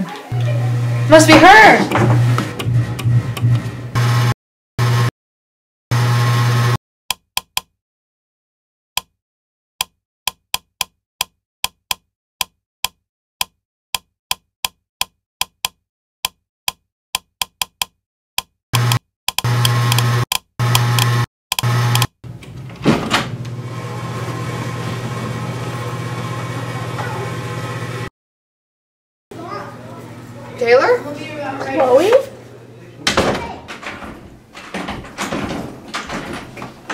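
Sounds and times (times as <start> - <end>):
electrical buzz: 0.3 - 5.1, 5.9 - 6.8, 18.8 - 28.1.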